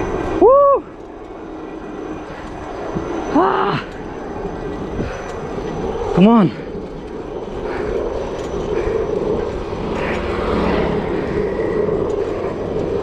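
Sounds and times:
bicycle tyres on paved road: 0.0s - 13.0s
wind buffeting microphone: 0.0s - 13.0s.

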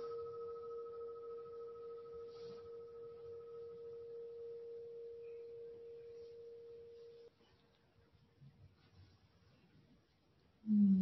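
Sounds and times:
singing bowl ringing: 0.0s - 7.3s.

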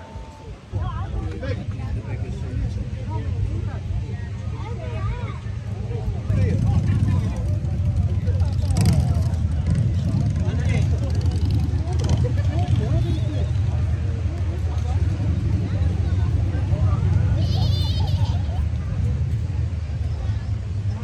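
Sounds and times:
people chatting: 0.0s - 21.0s.

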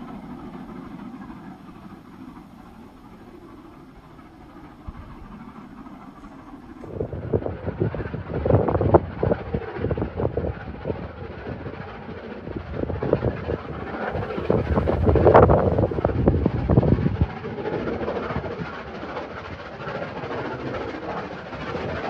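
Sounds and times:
distant steam train running: 0.0s - 22.0s.

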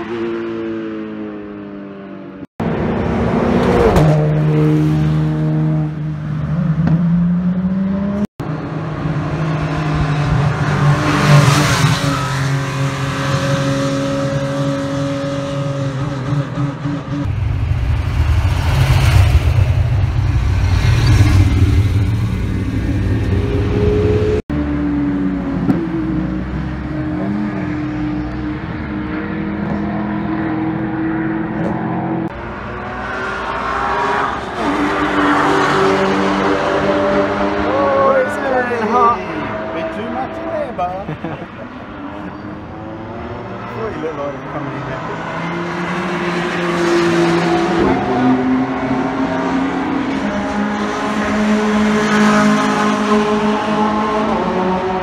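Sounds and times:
deep engine rumble: 17.2s - 24.4s
racing cars accelerating past: 41.7s - 55.0s.

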